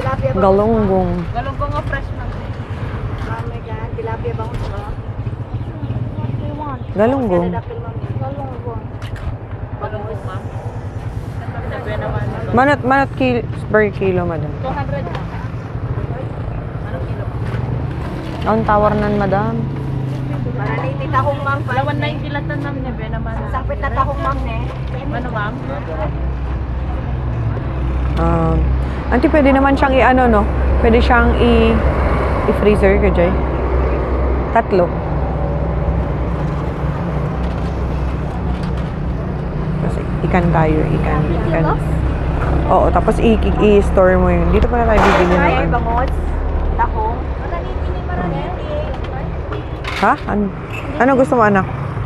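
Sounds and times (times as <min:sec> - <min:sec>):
low engine hum: 0:00.0 - 0:52.0
outdoor market background noise: 0:00.0 - 0:52.0.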